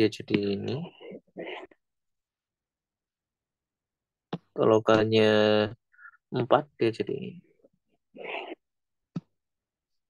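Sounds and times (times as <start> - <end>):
man speaking: 0.0 - 0.9.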